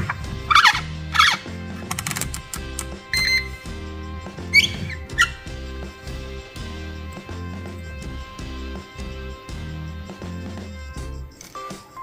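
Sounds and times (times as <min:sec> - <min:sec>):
background music with beat: 0:00.0 - 0:12.0
multimeter beep: 0:03.1 - 0:03.6
short squeaks: 0:03.1 - 0:03.6, 0:04.5 - 0:05.4.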